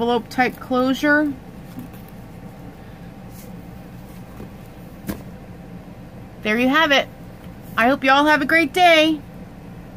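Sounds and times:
low background hum: 0:00.0 - 0:09.9.

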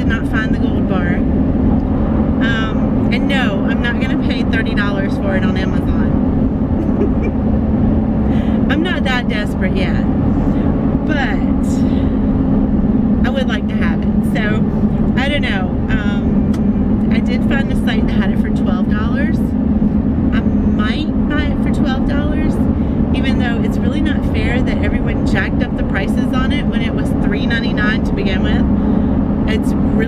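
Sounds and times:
woman talking: 0:00.0 - 0:01.3, 0:02.4 - 0:07.3, 0:08.3 - 0:10.1, 0:11.0 - 0:12.1, 0:13.2 - 0:14.6, 0:15.2 - 0:19.5, 0:20.3 - 0:28.7, 0:29.5 - 0:30.0
car cabin drone and road noise: 0:00.0 - 0:30.0.

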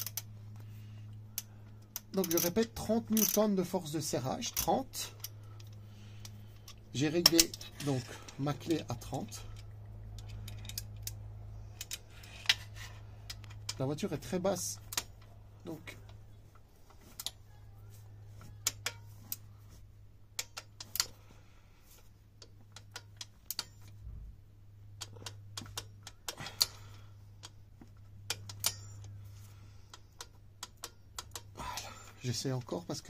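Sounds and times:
torque wrench ratchet clicking: 0:00.0 - 0:00.3, 0:01.4 - 0:03.5, 0:28.3 - 0:29.2, 0:30.1 - 0:31.9
steady low hum: 0:00.0 - 0:33.0.

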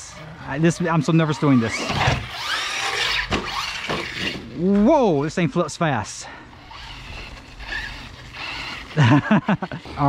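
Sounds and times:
toy truck motor whirring: 0:00.0 - 0:04.6, 0:06.5 - 0:10.0.

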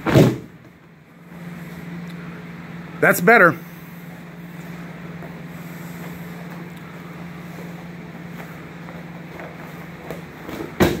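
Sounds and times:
body thudding on a mat: 0:00.0 - 0:00.6, 0:10.1 - 0:11.0
low hum: 0:00.0 - 0:11.0.

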